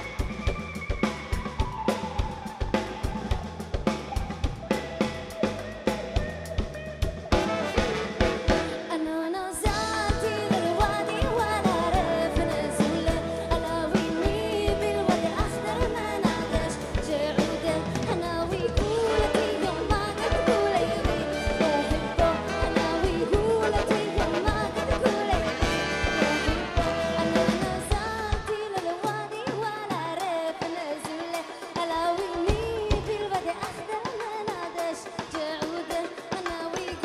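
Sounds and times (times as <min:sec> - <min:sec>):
bass: 0:00.0 - 0:08.9, 0:09.6 - 0:28.7, 0:32.4 - 0:33.4
funk band with horns: 0:00.0 - 0:37.0
woman singing: 0:08.7 - 0:37.0.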